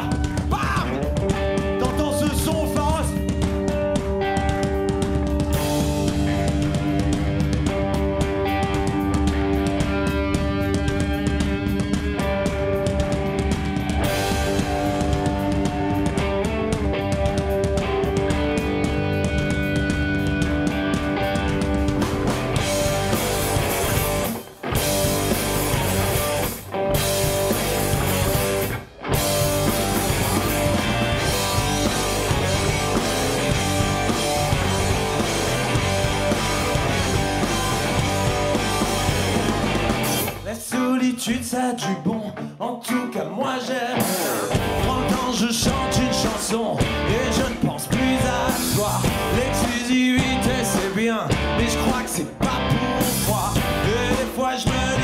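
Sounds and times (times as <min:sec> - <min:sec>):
drum kit: 0:00.0 - 0:40.5, 0:44.0 - 0:55.0
bass: 0:00.0 - 0:42.6, 0:43.8 - 0:55.0
electric guitars: 0:00.0 - 0:55.0.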